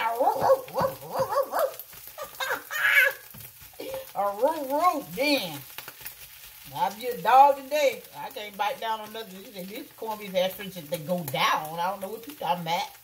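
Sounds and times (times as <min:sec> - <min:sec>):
spatula stirring: 0:00.0 - 0:12.5
food sizzling in a frying pan: 0:00.0 - 0:13.0
woman's vocal sounds and laughter: 0:02.1 - 0:03.2.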